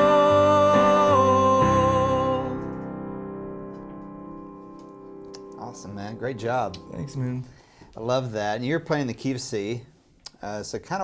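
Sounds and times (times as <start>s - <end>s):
held piano chord: 0.0s - 7.4s.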